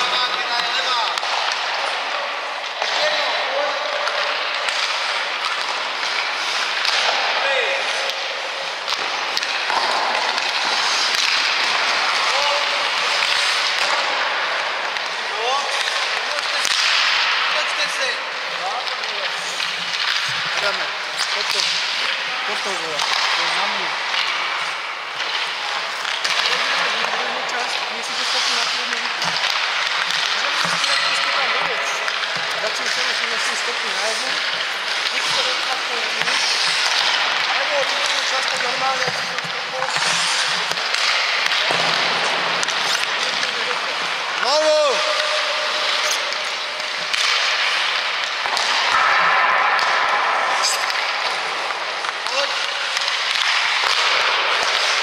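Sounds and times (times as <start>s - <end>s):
skate blades scraping ice: 0.0s - 55.0s
sticks and pucks cracking: 0.0s - 55.0s.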